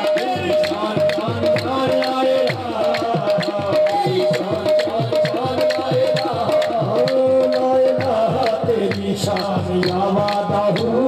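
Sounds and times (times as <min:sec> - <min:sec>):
qawwali music: 0:00.0 - 0:11.0
tabla strokes: 0:00.0 - 0:11.0.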